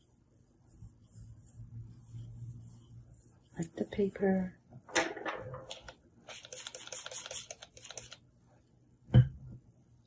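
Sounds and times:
brush scrubbing on paper: 0:00.0 - 0:04.2.

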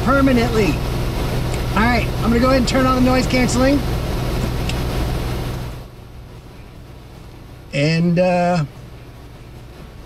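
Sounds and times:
aircraft engine and propeller drone: 0:00.0 - 0:10.0.

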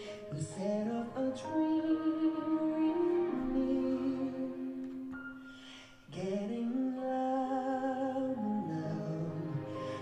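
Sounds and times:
man singing with vibrato: 0:00.0 - 0:04.9, 0:06.0 - 0:10.0.

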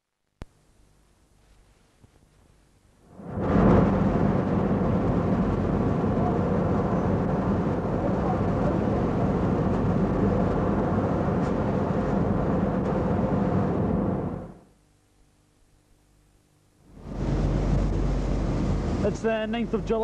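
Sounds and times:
low machinery hum: 0:00.1 - 0:20.0
industrial plant rushing roar: 0:03.1 - 0:14.6, 0:16.9 - 0:20.0.

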